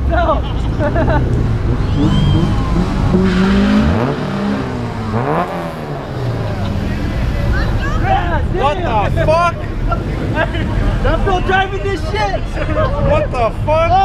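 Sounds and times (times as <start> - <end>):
car engines revving: 0.0 - 14.0
crowd shouting: 1.8 - 3.8, 6.4 - 9.1.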